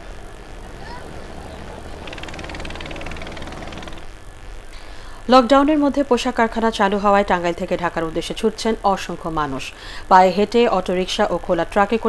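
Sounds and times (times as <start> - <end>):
ferry engine humming: 0.0 - 4.1
outdoor noise: 0.0 - 12.0
fast high rattle: 1.2 - 4.1.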